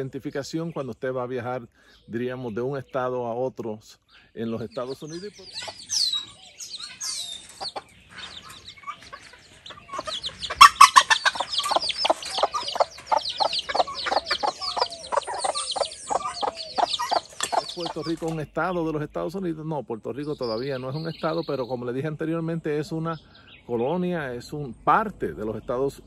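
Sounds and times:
chicks peeping: 0:04.2 - 0:26.0
hen clucking: 0:04.4 - 0:18.9.

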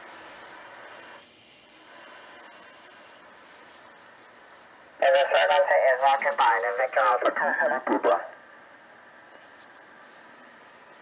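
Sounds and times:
thin radio voice: 0:05.0 - 0:08.4.

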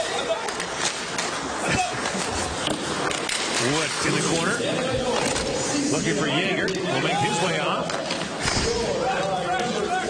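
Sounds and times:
murmur of crowd voices: 0:00.0 - 0:10.0
skates scraping ice: 0:00.0 - 0:10.0.

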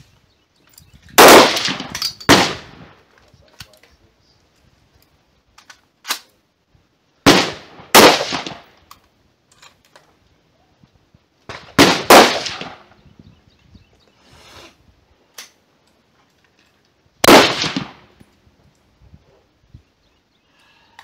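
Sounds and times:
rifle shots echoing: 0:01.2 - 0:03.0, 0:07.2 - 0:08.8, 0:11.5 - 0:12.9, 0:17.2 - 0:18.2.

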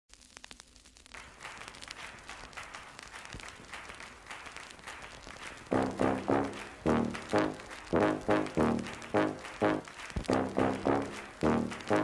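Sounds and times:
dense crackle of small clicks: 0:00.1 - 0:12.0
brass music: 0:05.7 - 0:12.0.

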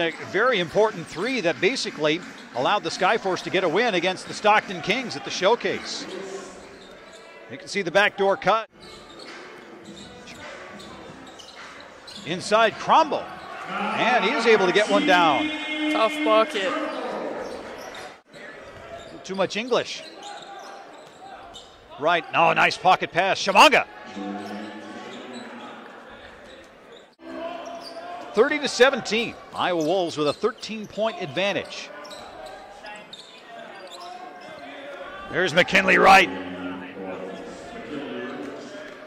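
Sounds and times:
murmur of voices: 0:00.8 - 0:19.4, 0:23.5 - 0:29.8, 0:31.1 - 0:39.0
basketball play on hardwood court: 0:01.9 - 0:03.5, 0:06.0 - 0:07.4, 0:17.4 - 0:19.2, 0:20.0 - 0:22.0
short high shoe squeaks: 0:08.8 - 0:12.3, 0:31.6 - 0:34.6
crowd murmur: 0:23.9 - 0:28.3, 0:34.8 - 0:39.0.

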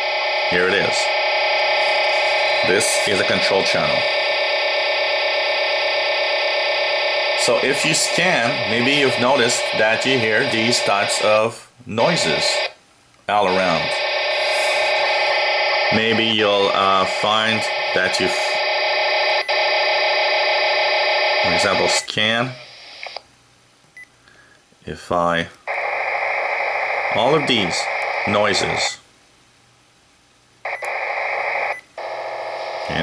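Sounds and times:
steady radio data noise: 0:00.0 - 0:23.3, 0:25.4 - 0:29.1, 0:30.6 - 0:33.0.

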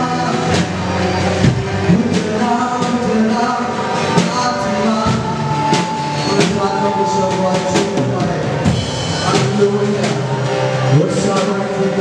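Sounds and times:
drum kit with cymbals: 0:00.0 - 0:12.0
sustained chords: 0:00.0 - 0:12.0.

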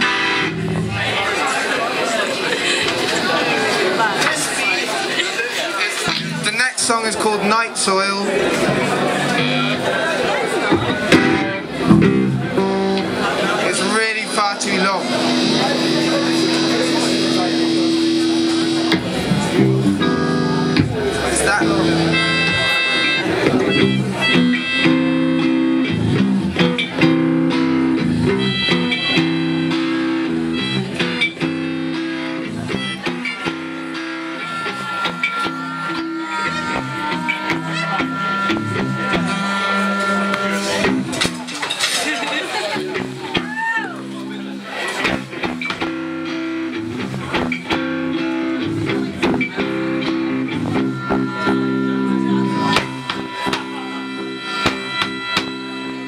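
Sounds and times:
electric guitar: 0:00.0 - 0:01.6, 0:06.0 - 0:06.9, 0:08.3 - 0:56.0
live band music: 0:00.0 - 0:56.0
person singing: 0:34.0 - 0:41.1.

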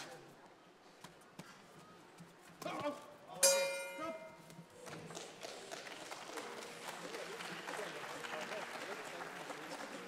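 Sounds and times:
boxing ring bell: 0:03.4 - 0:04.4.

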